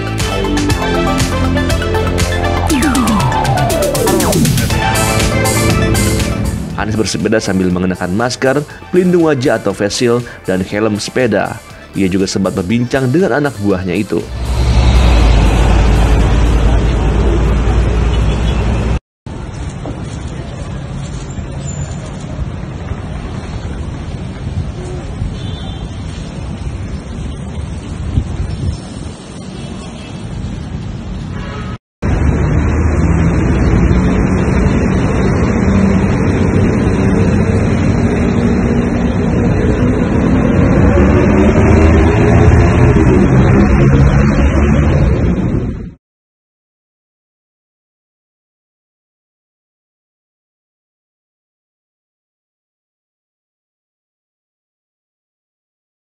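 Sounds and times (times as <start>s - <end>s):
city street traffic rumble: 0.0s - 46.0s.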